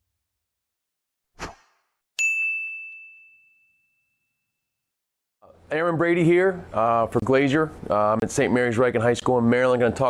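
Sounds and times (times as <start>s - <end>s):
bell-like ding chime: 2.2s - 4.5s.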